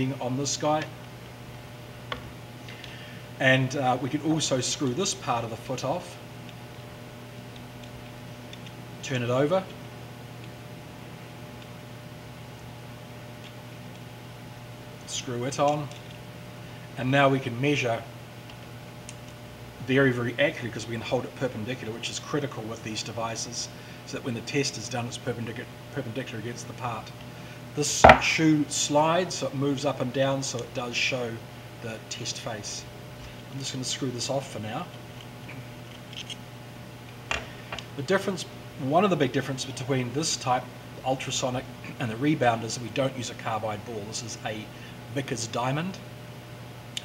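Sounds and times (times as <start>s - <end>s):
low electrical hum: 0.0s - 47.0s.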